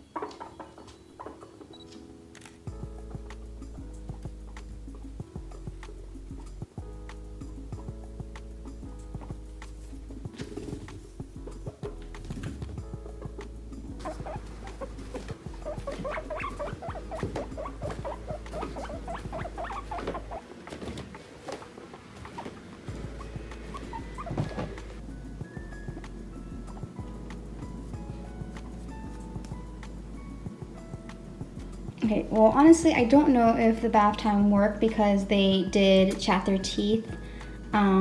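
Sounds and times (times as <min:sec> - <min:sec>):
guinea pigs squeaking: 0:00.0 - 0:11.3, 0:12.2 - 0:32.6
background music: 0:00.0 - 0:38.0.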